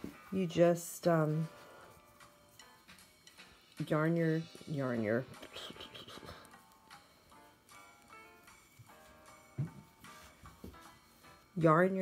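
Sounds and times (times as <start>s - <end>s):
woman speaking: 0.3s - 1.6s, 3.8s - 6.2s, 11.6s - 12.0s.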